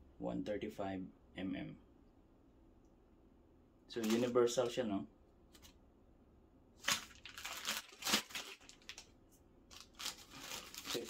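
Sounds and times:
plastic bag crinkling: 3.9s - 4.6s, 6.8s - 11.0s.

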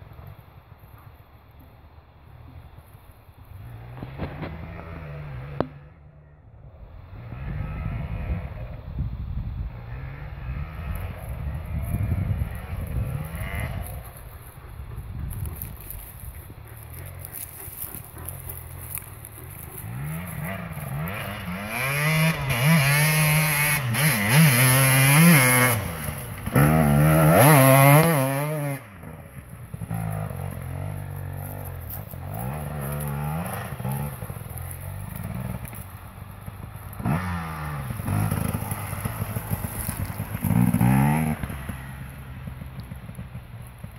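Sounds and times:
dirt bike engine revving: 3.6s - 6.0s, 7.0s - 8.9s, 9.6s - 43.9s.

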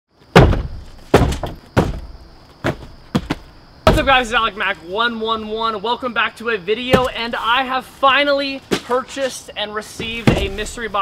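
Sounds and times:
cardboard boxes thudding down: 0.3s - 4.4s, 6.9s - 7.4s, 9.9s - 11.0s.

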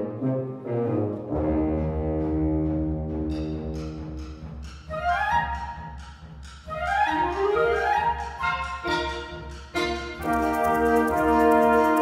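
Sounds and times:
concert band playing a march: 0.0s - 12.0s.

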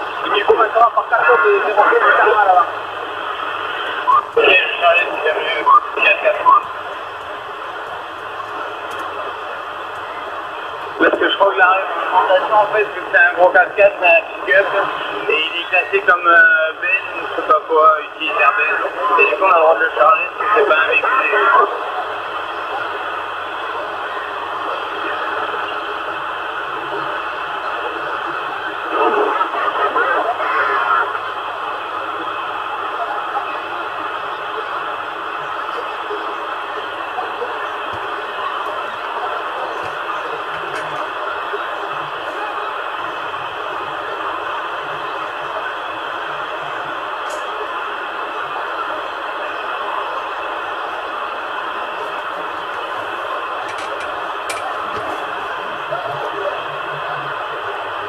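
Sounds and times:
radio static hiss: 0.0s - 58.0s
radio station breaking through: 0.0s - 58.0s
weak distant radio voices: 0.0s - 58.0s.

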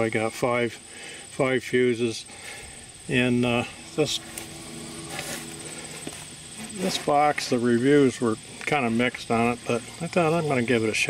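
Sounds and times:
faint low hum: 0.0s - 11.0s
insects trilling: 0.0s - 11.0s.

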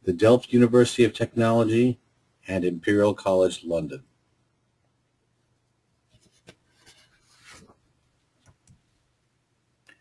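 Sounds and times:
rustling scrape: 6.1s - 7.8s.

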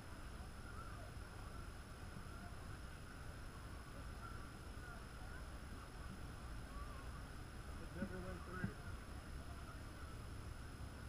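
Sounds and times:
steady high-pitched whine: 0.0s - 11.0s.

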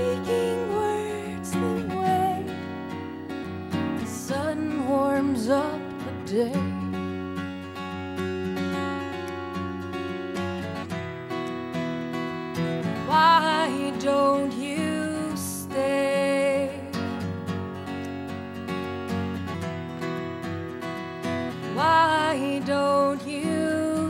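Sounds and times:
woman singing: 0.0s - 2.7s, 4.0s - 7.1s, 13.0s - 17.2s, 21.7s - 24.0s
acoustic guitar: 0.0s - 24.0s.

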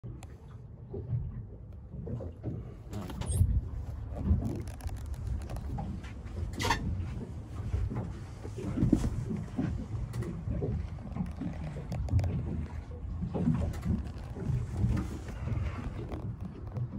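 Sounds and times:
boat engine idling: 0.1s - 16.9s.

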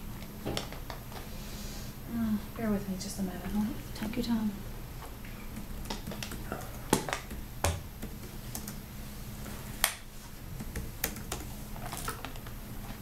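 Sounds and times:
laptop keyboard typing: 5.5s - 8.9s, 9.8s - 12.4s.

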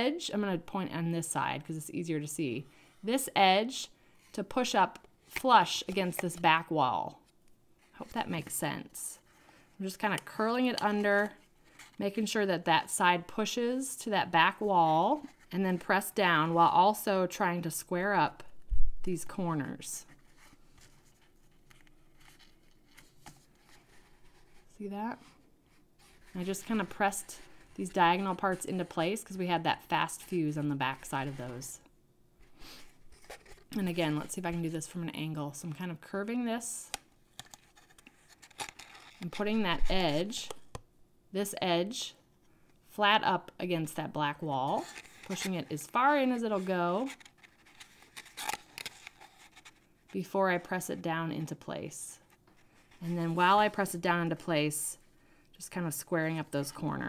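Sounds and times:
cardstock rustling and scraping: 20.0s - 29.3s, 32.6s - 35.0s, 37.3s - 40.7s, 44.7s - 50.1s.

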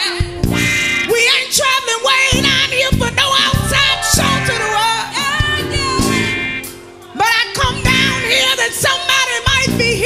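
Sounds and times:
female gospel quartet singing: 2.3s - 10.0s.

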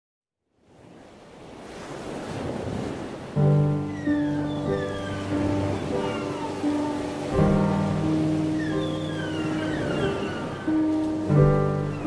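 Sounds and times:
ocean surf on beach: 0.6s - 12.0s
sustained musical notes: 3.5s - 12.0s.

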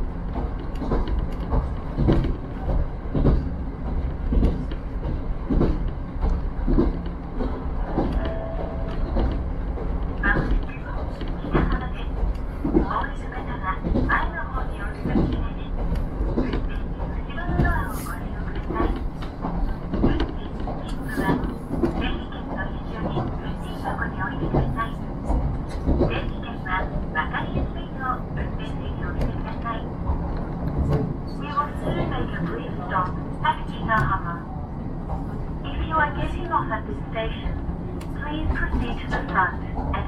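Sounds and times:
railcar rumble on rails: 0.0s - 40.0s.

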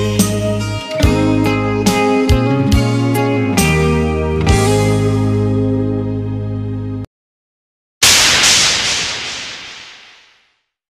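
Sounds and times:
bright hissing burst: 8.0s - 10.6s.

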